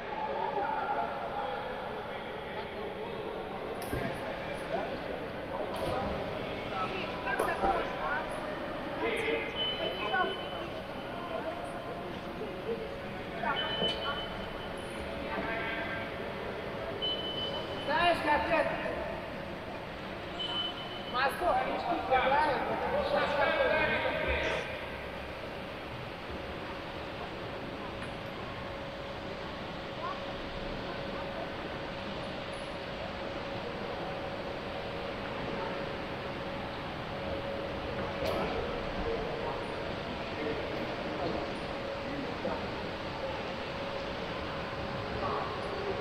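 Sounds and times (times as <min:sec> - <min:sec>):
faint steady hum: 0:00.0 - 0:46.0.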